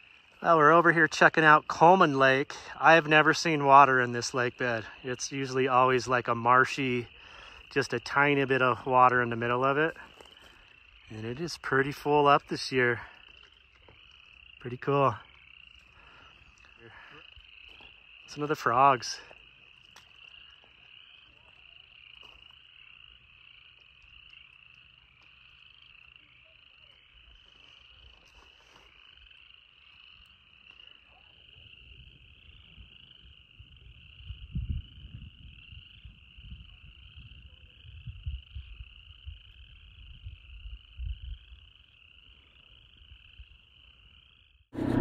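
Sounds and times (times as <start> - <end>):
frogs trilling: 0.0 - 45.0
low rumbles: 44.8 - 45.0.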